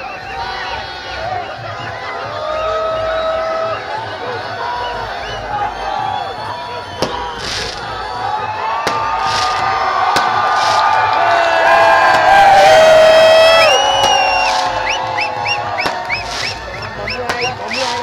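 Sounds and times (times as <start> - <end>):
crowd cheering and shouting: 0.0 - 18.0.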